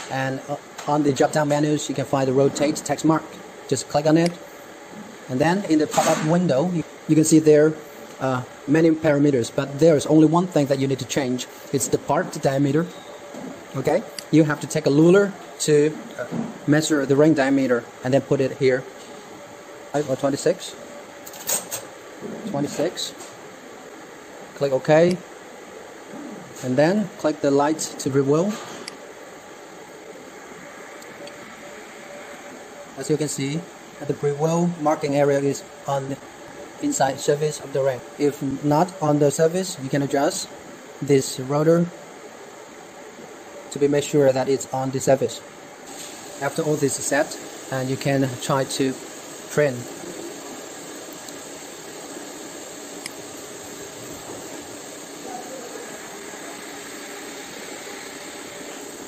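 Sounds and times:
fan hiss: 0:00.0 - 0:59.0.

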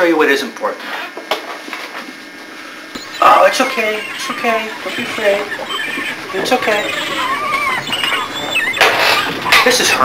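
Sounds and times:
steady low hum: 0:02.5 - 0:10.0.

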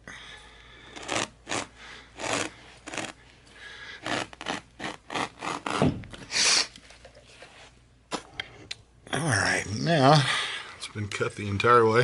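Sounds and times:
carpet knife slicing carpet: 0:00.9 - 0:03.2, 0:04.0 - 0:06.4.

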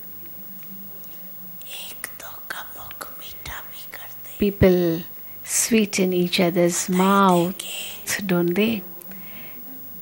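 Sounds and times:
woman whispering: 0:01.6 - 0:05.1, 0:06.7 - 0:08.8.

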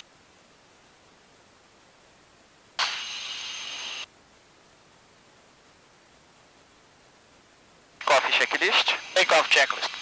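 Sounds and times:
low steady hiss: 0:00.0 - 0:10.0
radio static burst: 0:02.8 - 0:04.1, 0:08.0 - 0:10.0.

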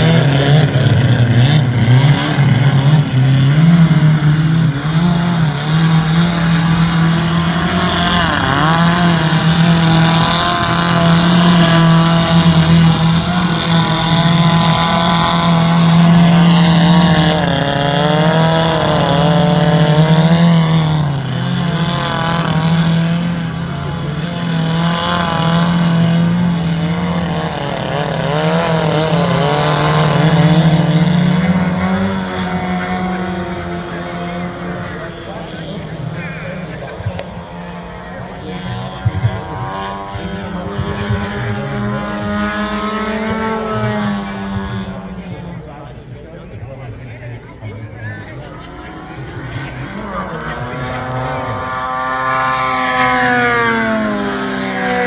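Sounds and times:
model plane engines: 0:00.0 - 0:55.0.

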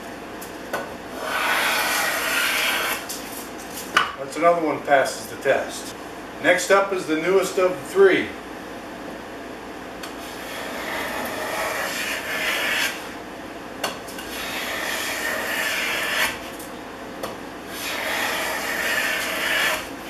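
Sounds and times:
plane cutting wood shavings: 0:01.2 - 0:03.1, 0:10.2 - 0:13.1, 0:14.2 - 0:16.5, 0:17.7 - 0:20.0.

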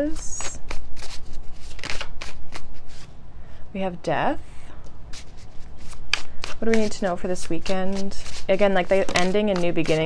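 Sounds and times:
cards being shuffled: 0:00.1 - 0:03.1, 0:05.1 - 0:10.0.

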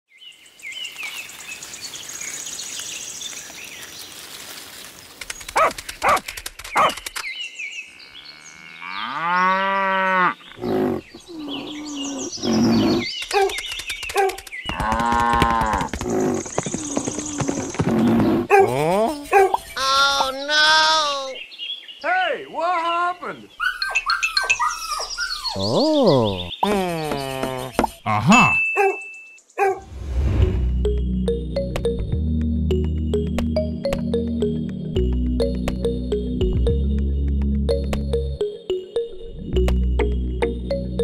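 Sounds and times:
sharp clicks: 0:05.1 - 0:07.3, 0:13.1 - 0:16.2
cattle mooing: 0:08.0 - 0:13.0
high bird chirps: 0:10.4 - 0:14.8, 0:23.6 - 0:26.7, 0:27.7 - 0:29.8.

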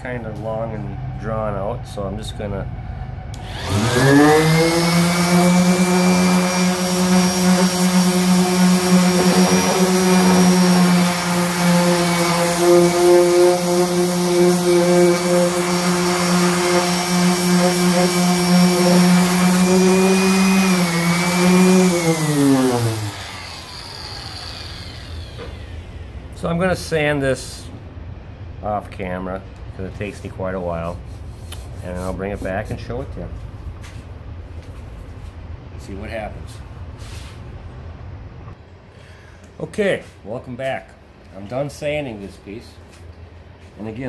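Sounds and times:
orbital sander whining: 0:03.4 - 0:26.5.

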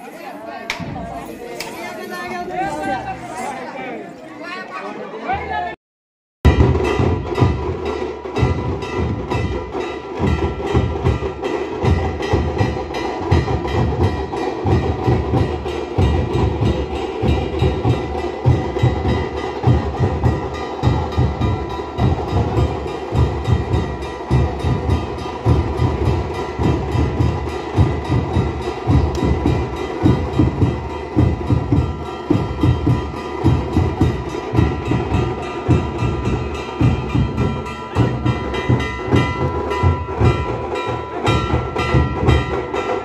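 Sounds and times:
barrel drums beaten fast: 0:06.4 - 0:43.0.

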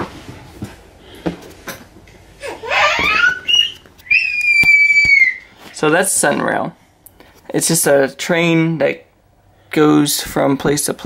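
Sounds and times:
baby squealing: 0:02.4 - 0:05.5.

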